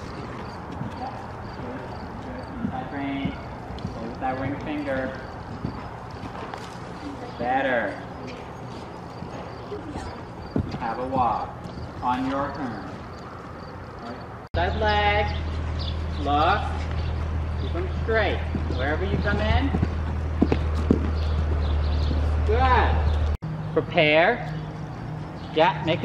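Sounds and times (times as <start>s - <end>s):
horse hoofbeats on dirt: 0.0s - 13.7s, 16.6s - 23.4s
steady low hum: 0.0s - 26.0s.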